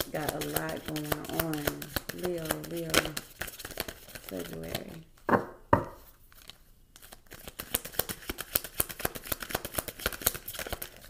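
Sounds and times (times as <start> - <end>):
cards shuffling clicks: 0.0 - 5.0, 6.3 - 11.0.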